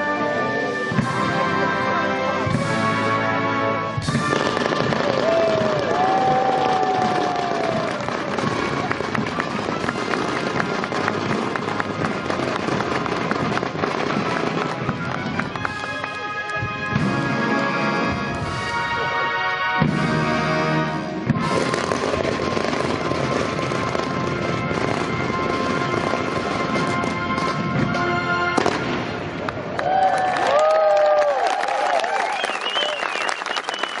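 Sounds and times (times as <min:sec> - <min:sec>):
military band music: 0:00.0 - 0:29.4
fireworks crackling: 0:04.0 - 0:19.1, 0:21.0 - 0:31.4
high firework whistles: 0:32.3 - 0:34.0.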